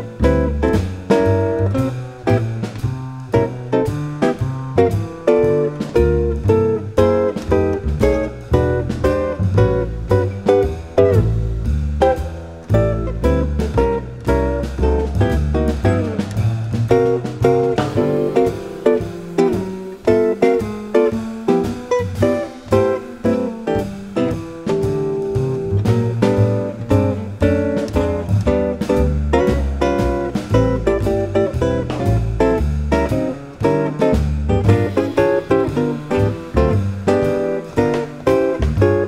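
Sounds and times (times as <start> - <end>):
drums keeping time: 0.0 - 39.0
plucked guitar lines: 0.0 - 39.0
upright bass walking: 0.0 - 39.0.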